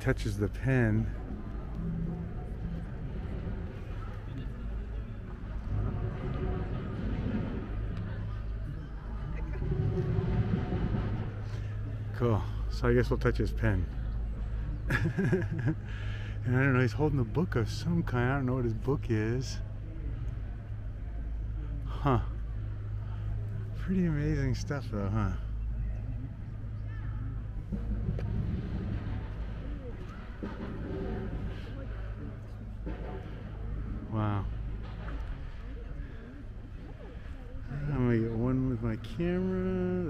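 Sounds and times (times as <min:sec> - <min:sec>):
faint voices: 0:00.0 - 0:40.0
low background rumble: 0:00.0 - 0:40.0.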